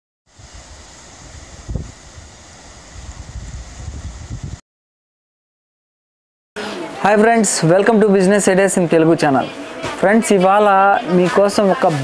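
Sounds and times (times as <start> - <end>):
wind buffeting microphone: 0.3 - 4.6.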